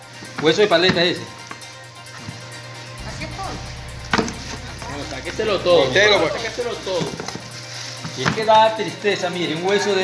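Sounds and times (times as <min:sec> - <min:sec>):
steady low hum: 0:03.0 - 0:08.0.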